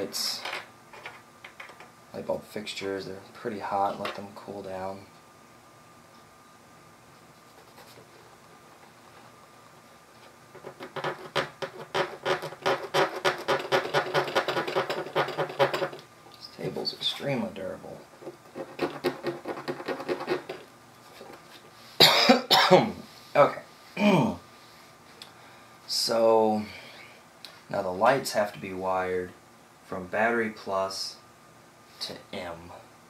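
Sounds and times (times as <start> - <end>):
man coughing loudly: 22.0 - 22.9.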